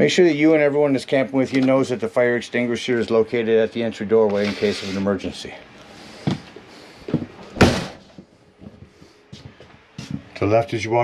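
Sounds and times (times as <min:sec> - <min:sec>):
door slamming shut: 0:07.6 - 0:08.0.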